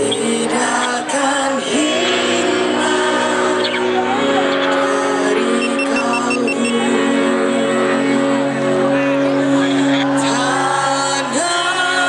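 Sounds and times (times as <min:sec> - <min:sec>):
quick high beeps: 0:05.6 - 0:06.7.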